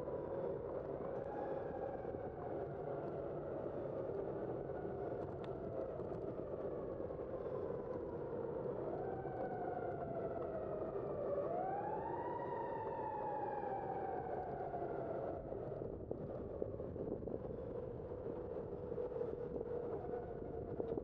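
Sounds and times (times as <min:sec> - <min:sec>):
wind noise: 0:00.0 - 0:21.0
emergency vehicle siren wailing: 0:08.9 - 0:15.4.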